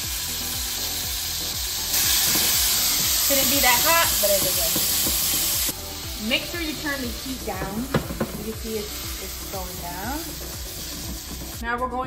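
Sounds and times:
butter sizzling in a frying pan: 0.0s - 11.6s.

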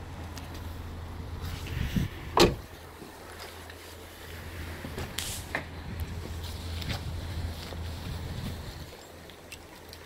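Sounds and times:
car door closing with thud: 2.3s - 2.7s.

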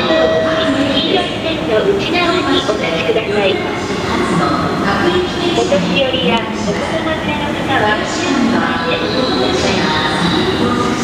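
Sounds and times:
woman's recorded announcement: 0.0s - 11.0s.

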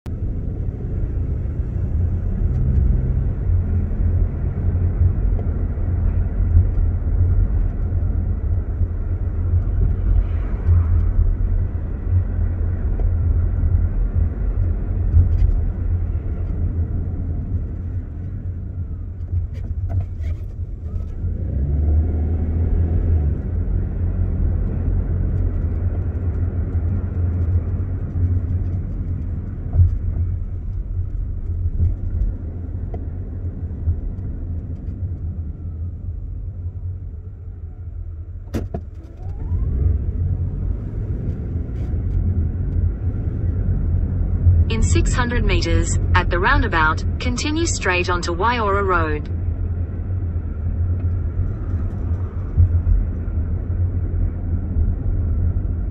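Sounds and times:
car engine and tyres rumbling: 0.0s - 55.9s.

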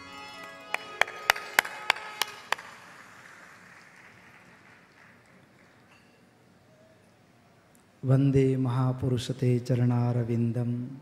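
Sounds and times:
crowd clapping in unison: 0.0s - 6.2s.

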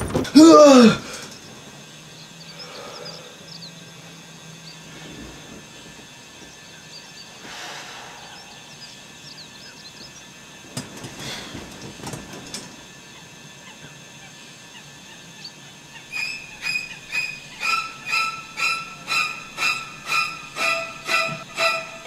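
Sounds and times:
bedding rustling: 0.0s - 2.0s, 4.5s - 7.6s, 10.5s - 13.0s
alarm clock beeping: 16.8s - 22.0s.

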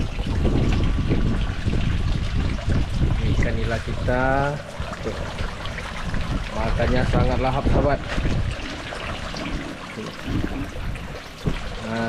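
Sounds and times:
fish splashing in water: 0.0s - 12.0s.

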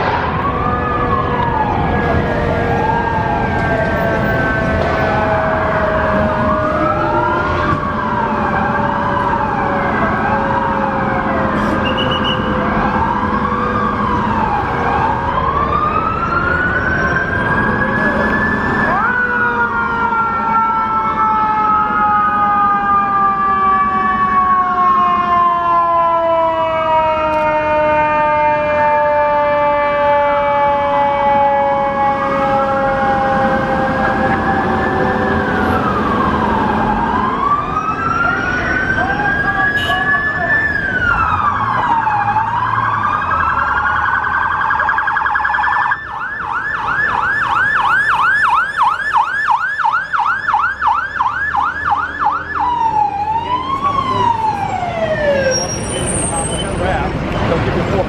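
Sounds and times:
siren winding down: 0.0s - 56.9s
siren wailing: 0.0s - 58.0s
siren yelping: 0.2s - 57.1s.

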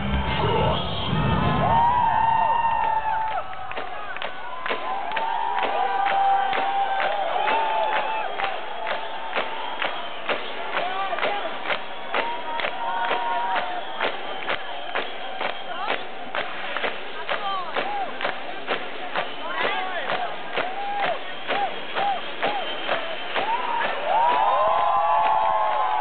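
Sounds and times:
loud live concert music: 0.0s - 25.3s
crowd cheering and whooping: 0.0s - 26.0s.

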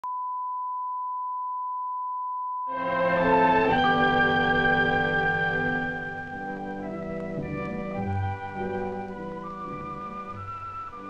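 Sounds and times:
sine test tone: 0.0s - 2.7s.

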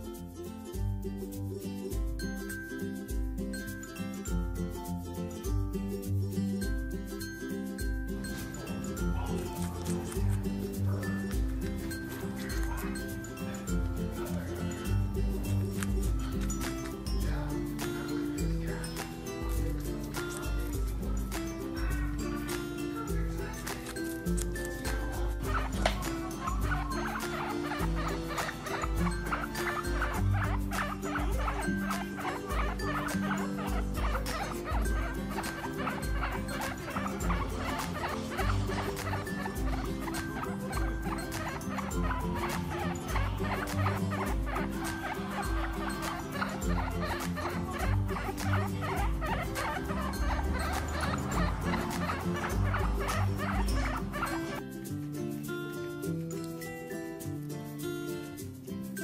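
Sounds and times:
background music: 0.0s - 59.0s
guinea pigs squeaking: 1.0s - 58.4s.

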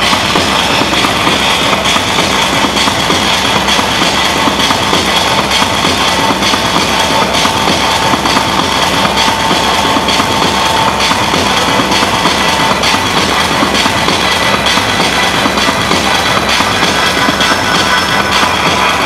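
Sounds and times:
loud techno music: 0.0s - 19.0s.

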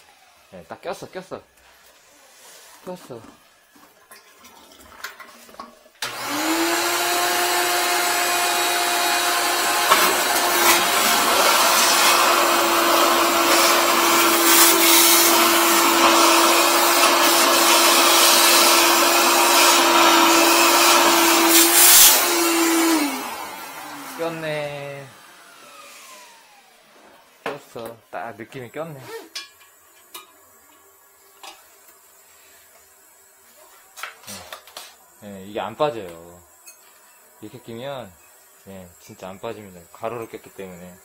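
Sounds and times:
shop vacuum running: 0.0s - 3.4s, 6.0s - 29.4s.

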